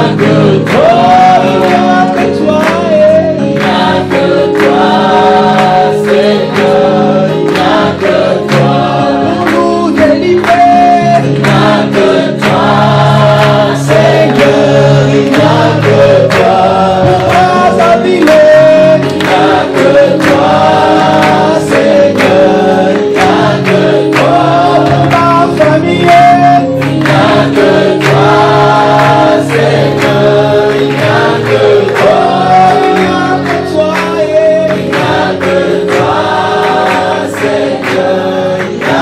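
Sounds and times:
congregation singing: 0.0 - 39.0.

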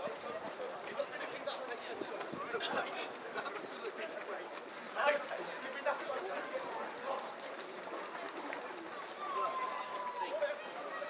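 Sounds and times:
runners' footsteps on wet road: 0.0 - 11.0
spectators chattering: 0.0 - 11.0.

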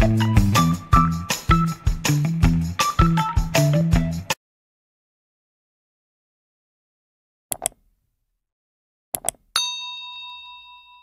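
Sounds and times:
mouse clicks: 7.5 - 7.9, 9.2 - 9.5
bright bell ding: 9.6 - 11.0.

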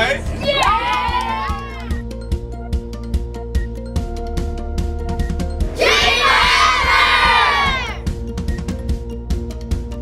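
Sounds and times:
children cheering: 0.4 - 2.0, 5.8 - 8.0.

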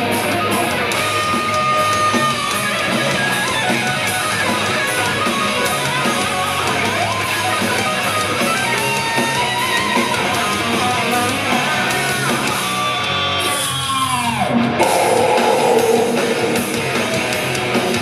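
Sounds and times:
distorted electric guitar: 14.5 - 18.0
thrash metal band playing: 14.6 - 18.0
fast drums: 14.7 - 18.0
note sliding down in pitch: 14.8 - 17.2.

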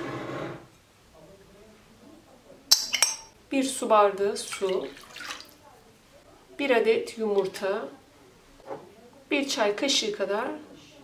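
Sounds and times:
metal spoon clinking on glass bowl: 2.7 - 3.4.

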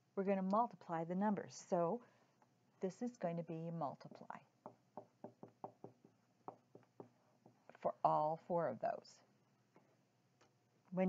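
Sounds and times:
marker pen writing on whiteboard: 4.0 - 7.8.

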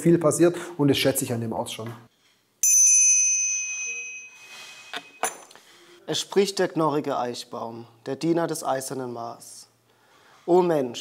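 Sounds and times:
hand bell ringing: 2.6 - 5.5.

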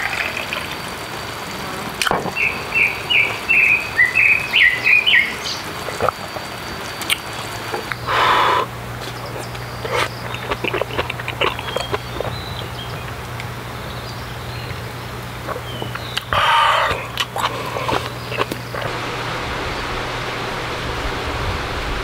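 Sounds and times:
steady hiss: 0.0 - 22.0
chewing: 4.6 - 18.9.

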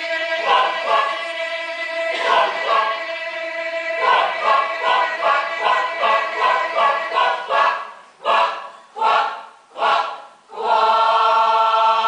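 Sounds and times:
mixed choir singing a cappella: 0.0 - 12.0.

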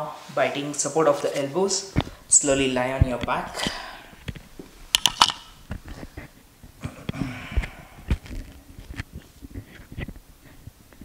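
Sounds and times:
clothing rustle: 0.1 - 6.8, 7.7 - 11.0
sharp clicks: 4.2 - 5.8.

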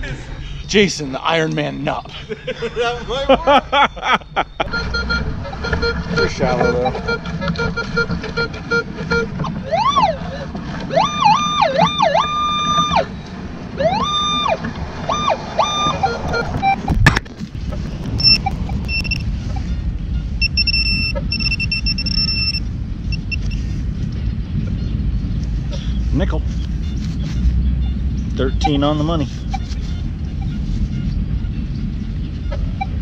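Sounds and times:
high steady beeps: 3.9 - 9.3, 15.1 - 17.0, 18.0 - 19.3, 20.4 - 23.6, 27.8 - 29.0
metal detector gliding tones: 4.6 - 13.2, 13.8 - 17.1, 17.7 - 23.6, 28.4 - 30.6.

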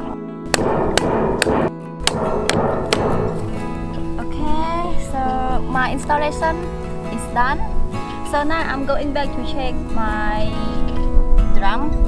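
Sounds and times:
background music: 0.0 - 12.0
hammer knocking on plastic pipe: 0.5 - 3.7.

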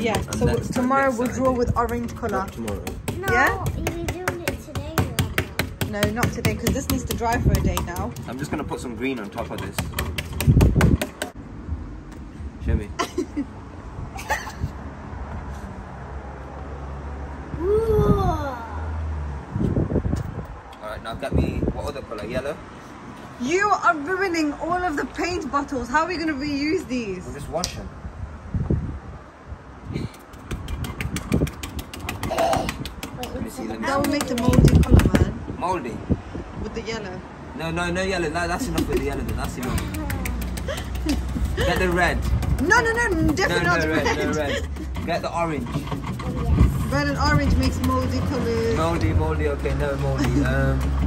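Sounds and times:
sponge tapping on table: 0.1 - 8.5, 30.4 - 35.3, 38.7 - 43.5
sponge dabbing on wet paint: 38.4 - 48.5.

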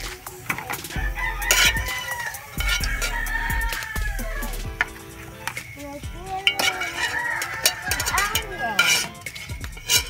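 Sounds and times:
chickens calling: 0.0 - 10.0
metal spatula scraping wok: 0.0 - 10.0
oil frying: 0.0 - 10.0
rooster crowing: 0.9 - 4.7, 6.5 - 9.9.

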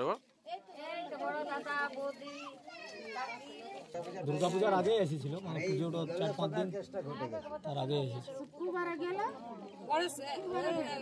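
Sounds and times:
women and children talking: 0.4 - 11.0.

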